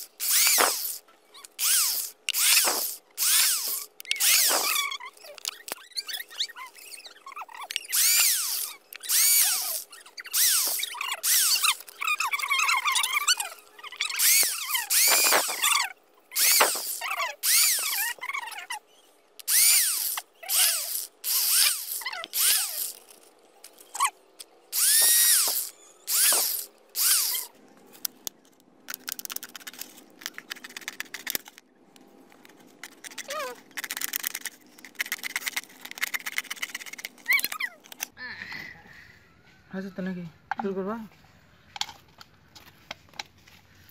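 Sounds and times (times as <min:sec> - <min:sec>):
electric drill boring plastic: 0:00.0 - 0:05.7, 0:07.7 - 0:13.4, 0:14.1 - 0:15.8, 0:16.4 - 0:18.2, 0:19.4 - 0:23.1, 0:24.8 - 0:27.5.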